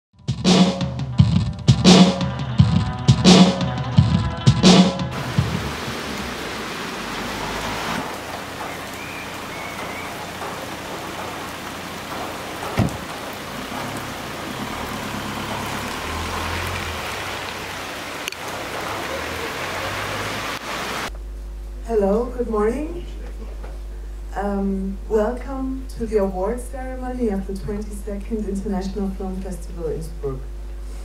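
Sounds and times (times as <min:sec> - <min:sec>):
rain on wet street: 0:05.1 - 0:21.1
knock: 0:12.1 - 0:13.2.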